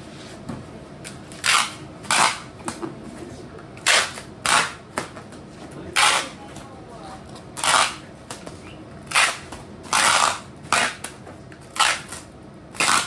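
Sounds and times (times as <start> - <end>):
packing tape ripping: 1.3 - 2.5, 3.8 - 4.8, 6.0 - 6.4, 7.6 - 8.0, 9.1 - 13.0.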